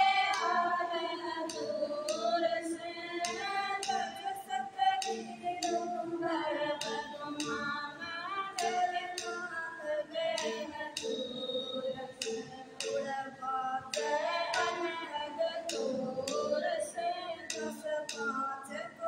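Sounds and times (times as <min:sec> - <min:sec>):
women singing together: 0:00.0 - 0:19.0.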